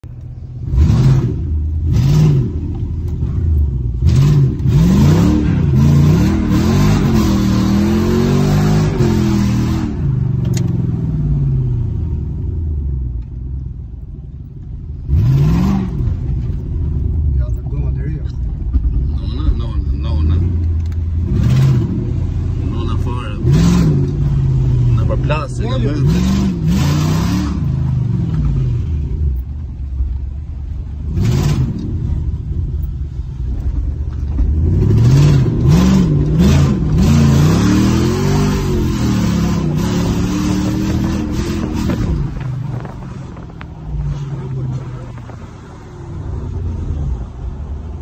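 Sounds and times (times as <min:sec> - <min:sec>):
car engine revving: 0:00.0 - 0:13.3, 0:14.9 - 0:48.0.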